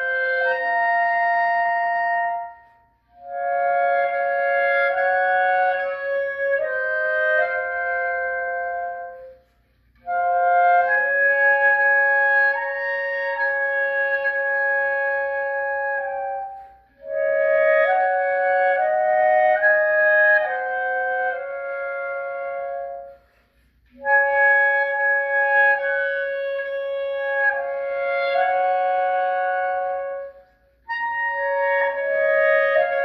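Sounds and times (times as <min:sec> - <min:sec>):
clarinet duet: 0:00.0 - 0:33.0.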